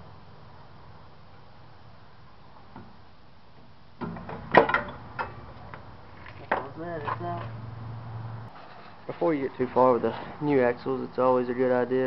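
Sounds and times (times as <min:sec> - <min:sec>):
low steady hum: 0:00.0 - 0:08.5
sharp metallic clunk: 0:04.0 - 0:05.5
person speaking: 0:06.5 - 0:07.6.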